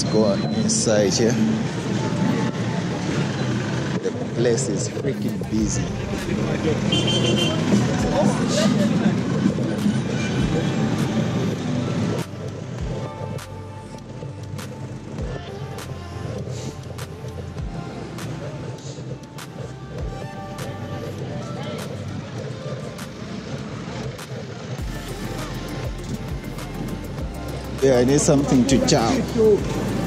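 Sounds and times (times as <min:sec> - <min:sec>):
background music with held notes: 0:00.0 - 0:30.0
busy street ambience: 0:00.0 - 0:30.0
vehicle noise: 0:00.0 - 0:30.0
car engine rumbling: 0:00.8 - 0:30.0.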